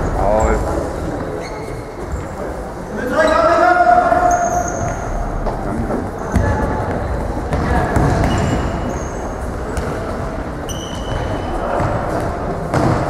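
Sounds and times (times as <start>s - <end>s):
sneakers squeaking on hall floor: 0.0s - 13.0s.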